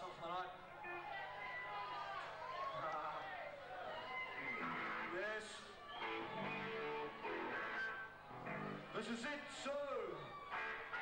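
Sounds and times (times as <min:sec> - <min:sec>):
electric guitar chords: 0:06.1 - 0:08.9.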